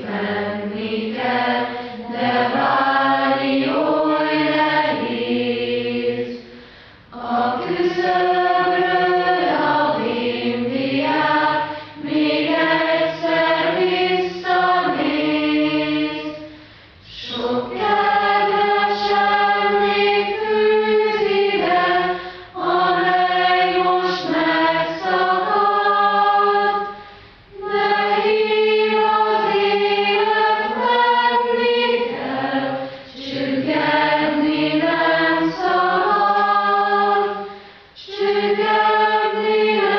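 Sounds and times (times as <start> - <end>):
choir singing long held notes: 0.0 - 39.9.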